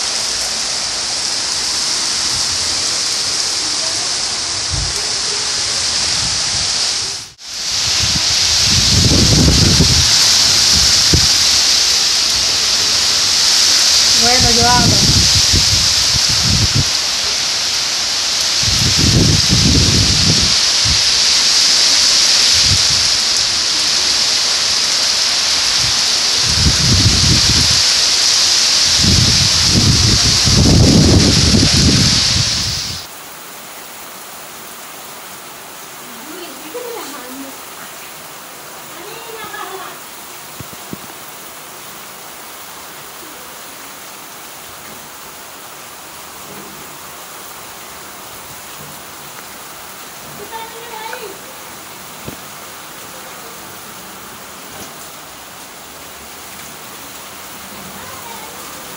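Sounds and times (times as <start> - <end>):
heavy rain pouring: 0.0 - 58.9
wind buffeting microphone: 4.4 - 23.6, 25.5 - 33.1.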